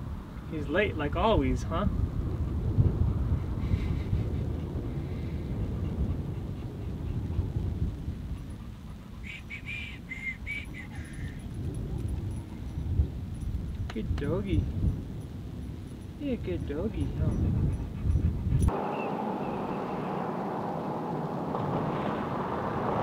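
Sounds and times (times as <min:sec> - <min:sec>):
wind rumbling on microphone: 0:00.0 - 0:23.0
dog whining: 0:09.2 - 0:11.5.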